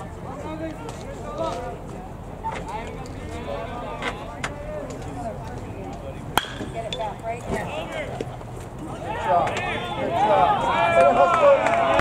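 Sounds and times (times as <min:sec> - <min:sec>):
spectators' voices: 0:00.0 - 0:12.0
metal bat hitting ball: 0:06.4 - 0:07.0.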